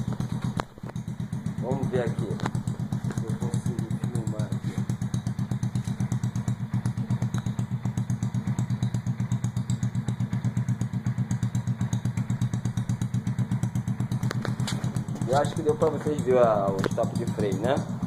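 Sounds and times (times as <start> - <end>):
small engine idling: 0.0 - 18.0.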